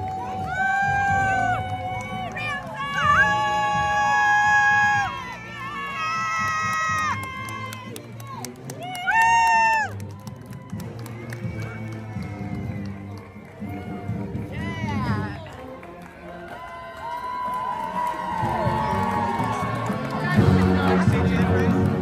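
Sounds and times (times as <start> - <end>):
crowd cheering: 0.0 - 22.0
marching band brass chords: 10.7 - 16.6, 18.4 - 22.0.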